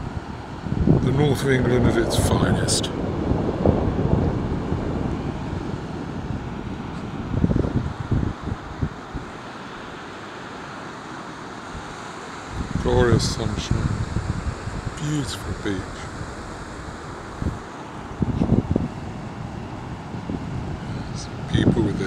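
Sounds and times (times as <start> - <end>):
wind buffeting microphone: 0.0 - 10.0, 11.6 - 22.0
sea surf breaking: 0.0 - 22.0.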